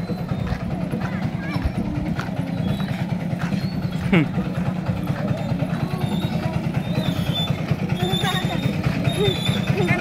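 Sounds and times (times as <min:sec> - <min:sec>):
small tractor engine running: 0:00.0 - 0:10.0.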